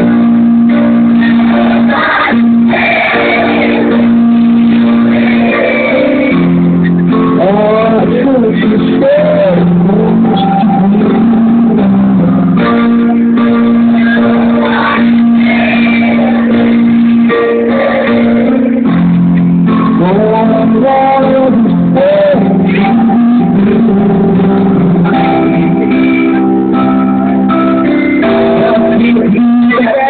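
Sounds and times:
live band over loudspeakers: 0:00.0 - 0:30.0.

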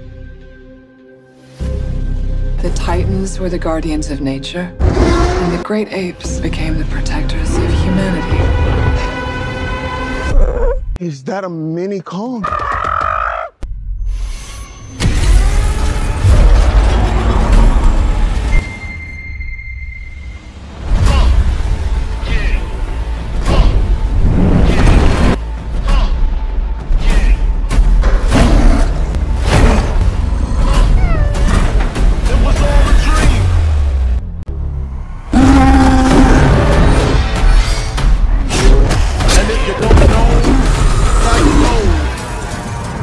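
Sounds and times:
trailer music with heavy bass: 0:00.0 - 0:11.0, 0:13.6 - 0:43.0
young ape crying: 0:12.4 - 0:13.6, 0:30.7 - 0:31.5
creature's high roar: 0:35.3 - 0:36.8.

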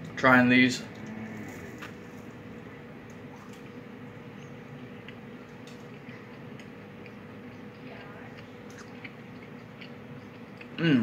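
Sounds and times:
faint hum: 0:00.0 - 0:11.0
soft chewing sounds: 0:00.8 - 0:11.0.

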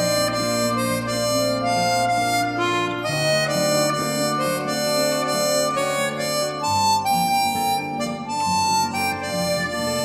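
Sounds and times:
harmonica playing slow melody: 0:00.0 - 0:10.0.

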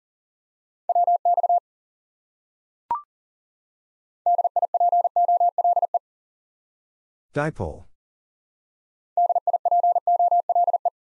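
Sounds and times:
morse code tone: 0:09.2 - 0:10.9.

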